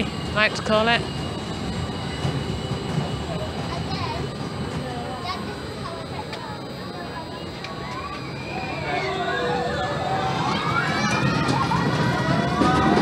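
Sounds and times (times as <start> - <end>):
faint crowd voices: 0.0 - 13.0
roller coaster wheels rumbling on rail: 0.0 - 13.0.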